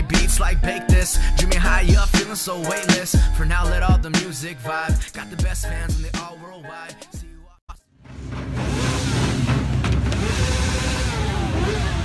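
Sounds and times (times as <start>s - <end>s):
car engine running: 8.0s - 12.0s
crowd chatter: 10.2s - 12.0s.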